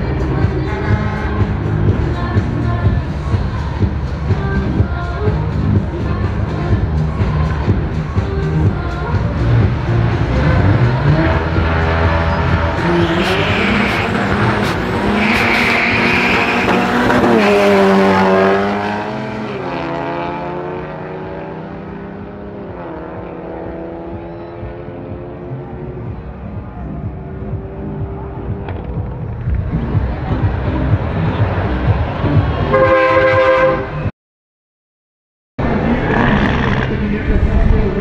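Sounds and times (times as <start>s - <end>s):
car engines revving and accelerating: 0.0s - 34.1s, 35.6s - 38.0s
high squeal: 12.3s - 17.0s.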